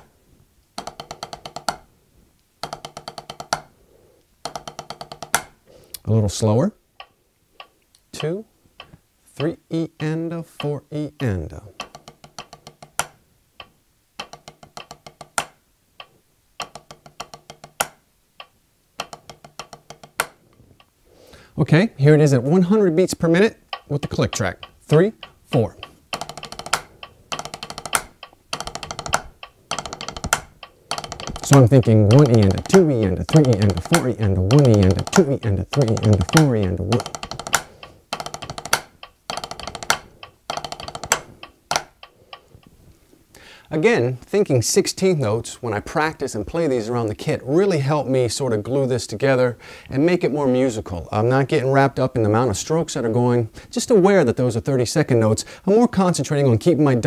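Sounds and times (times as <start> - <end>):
drumsticks on a practice pad: 0.7 - 1.9, 2.6 - 3.8, 4.4 - 5.6, 7.0 - 20.9, 23.2 - 42.7.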